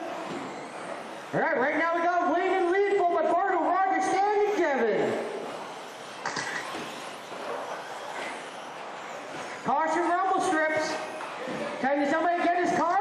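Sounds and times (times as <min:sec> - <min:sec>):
electric motor whining: 0:00.0 - 0:13.0
cars hissing on track: 0:04.0 - 0:11.9.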